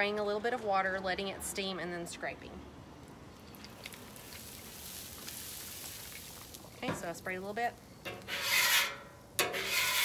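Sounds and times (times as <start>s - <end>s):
water sizzling on hot griddle: 3.7s - 10.0s.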